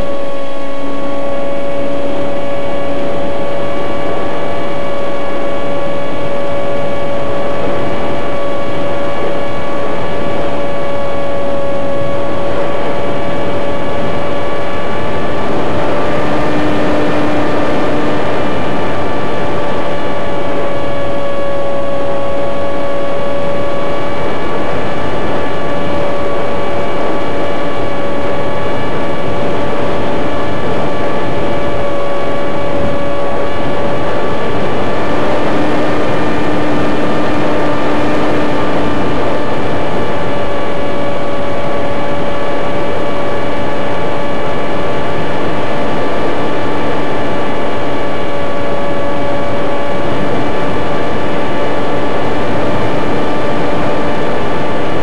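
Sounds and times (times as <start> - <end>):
model aircraft motor drone: 0.0 - 55.0.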